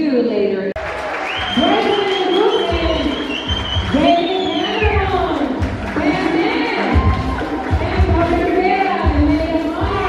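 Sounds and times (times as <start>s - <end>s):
song over loudspeakers: 1.5s - 10.0s.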